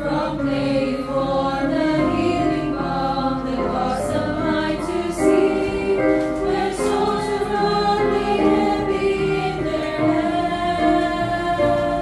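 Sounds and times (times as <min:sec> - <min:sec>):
recorded accompaniment: 0:00.0 - 0:12.0
women's choir singing a hymn: 0:00.0 - 0:12.0.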